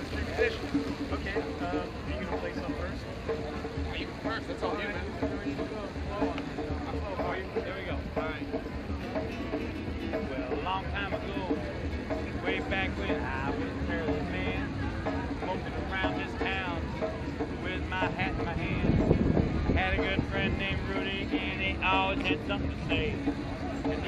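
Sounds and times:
acoustic guitar strumming: 0.0 - 24.0
people chattering: 0.0 - 24.0
wind buffeting microphone: 16.8 - 24.0.

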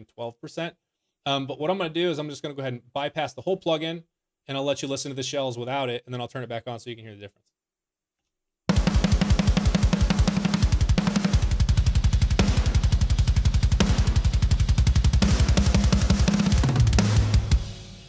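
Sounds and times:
fast double kick drum: 8.7 - 17.7
snare drum hits: 8.7 - 18.0.

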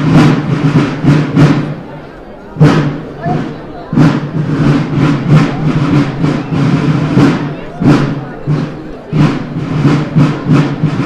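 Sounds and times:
snare drums fast rhythm: 0.0 - 1.9, 2.6 - 11.0.

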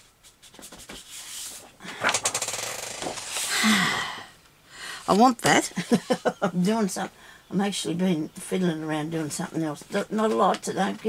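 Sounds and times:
paper rustling: 0.2 - 2.4, 3.0 - 3.5.

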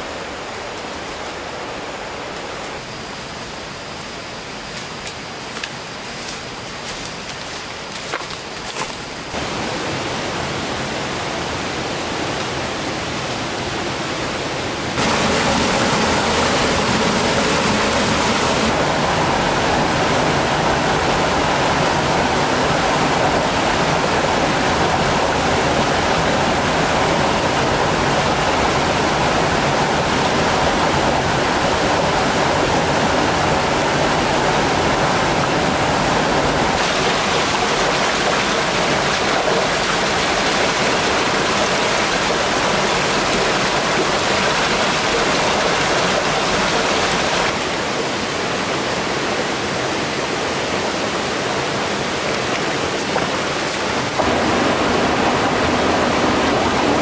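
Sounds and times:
mountain stream rushing: 0.0 - 57.0
small waterfall: 0.0 - 57.0.

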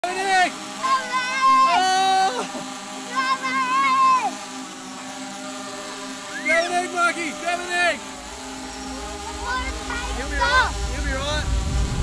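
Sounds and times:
drone propellers humming: 0.0 - 12.0.

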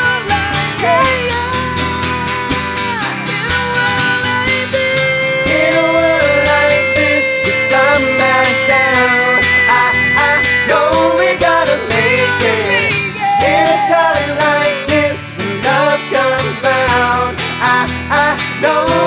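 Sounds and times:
men singing together: 0.0 - 2.6, 3.8 - 19.0
acoustic guitars strummed: 0.0 - 19.0.

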